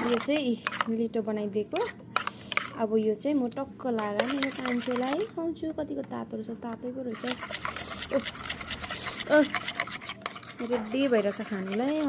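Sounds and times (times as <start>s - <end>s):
spoon scraping food in bowl: 0.0s - 1.0s, 1.7s - 5.4s, 7.1s - 12.0s.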